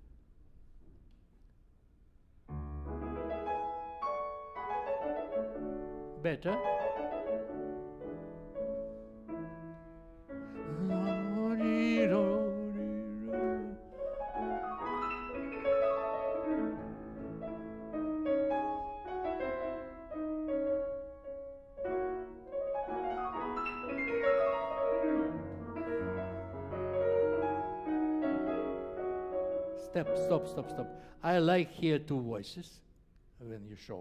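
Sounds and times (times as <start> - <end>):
classical grand piano: 2.4 - 32.7.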